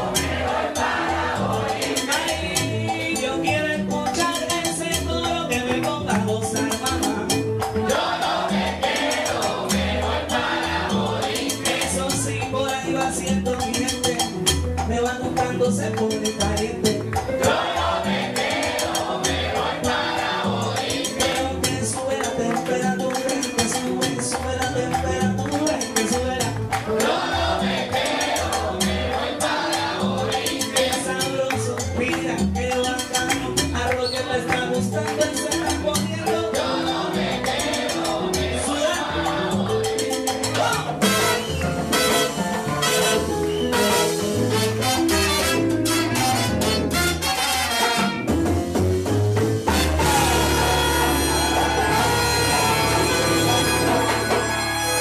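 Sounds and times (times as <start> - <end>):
bass: 0.0 - 55.0
keyboard piano: 0.0 - 55.0
salsa band playing: 0.0 - 55.0
singing: 33.8 - 35.5
full-band accent hit: 36.5 - 55.0
horn section: 41.0 - 48.5, 49.7 - 55.0
timbales percussion: 48.3 - 55.0.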